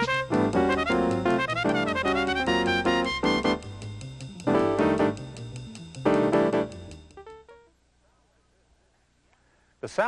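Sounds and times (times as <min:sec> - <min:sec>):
electronic organ notes: 0:00.0 - 0:07.7.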